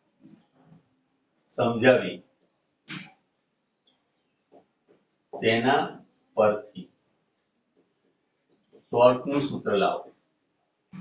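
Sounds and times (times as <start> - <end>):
man's voice: 1.6 - 2.1, 5.4 - 6.8, 9.0 - 10.0.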